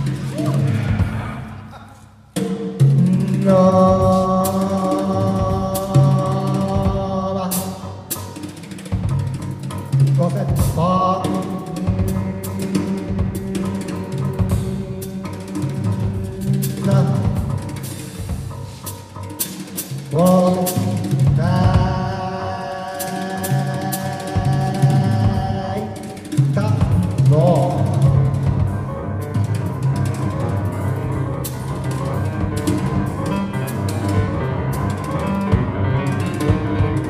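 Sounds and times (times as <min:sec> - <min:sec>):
rising pitched line: 0:00.0 - 0:02.3
piano: 0:00.0 - 0:37.0
wind instrument: 0:09.6 - 0:26.3.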